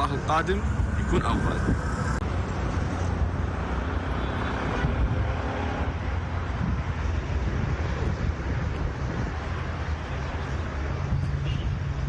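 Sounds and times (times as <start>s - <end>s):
road traffic rumble: 0.0s - 12.0s
wind buffeting microphone: 0.0s - 12.0s.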